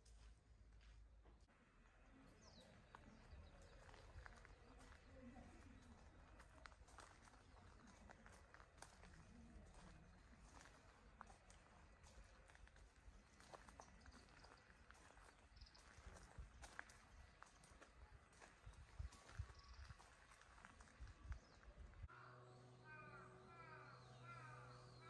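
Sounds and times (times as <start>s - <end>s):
footsteps on gravel: 2.3s - 21.8s.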